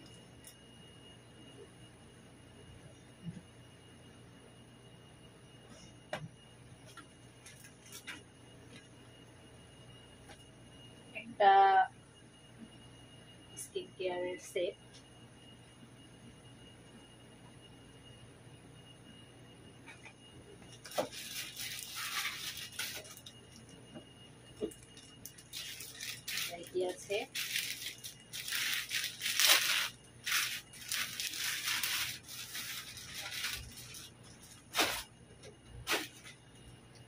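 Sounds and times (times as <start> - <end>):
plastic packaging crinkling: 20.8 - 23.7, 24.7 - 35.1.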